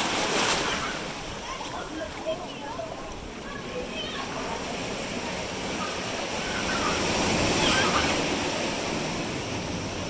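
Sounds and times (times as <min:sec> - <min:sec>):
ocean surf washing around rocks: 0:00.0 - 0:10.0.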